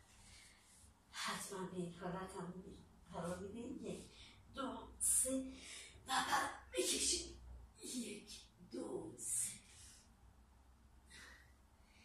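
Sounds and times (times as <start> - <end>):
woman breathing deeply: 11.0 - 12.0.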